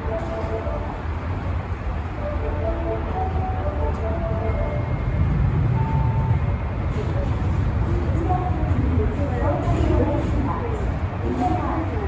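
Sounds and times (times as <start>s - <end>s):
subway train wheels rumbling on rail: 0.0s - 12.0s.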